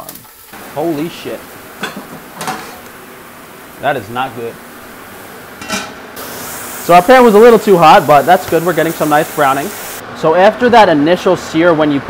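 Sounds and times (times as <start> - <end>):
meat sizzling in a pot: 0.0 - 10.0
pots and lids clattering: 1.7 - 2.9, 5.6 - 6.1.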